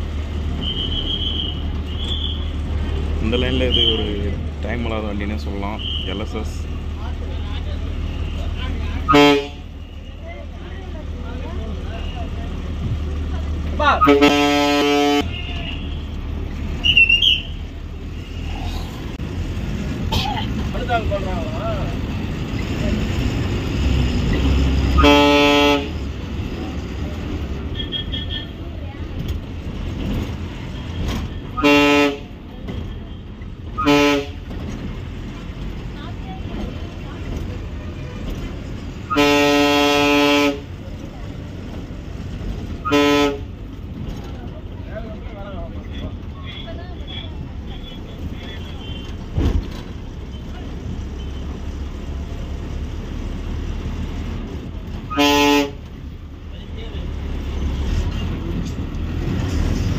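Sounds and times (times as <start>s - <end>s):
diesel bus engine running: 0.0s - 59.9s
bus horn honking: 0.5s - 2.7s, 8.1s - 10.2s, 13.8s - 16.2s, 24.7s - 26.3s, 27.6s - 28.7s, 30.7s - 34.7s, 39.0s - 40.8s, 42.7s - 43.8s, 46.0s - 49.5s, 55.0s - 56.1s.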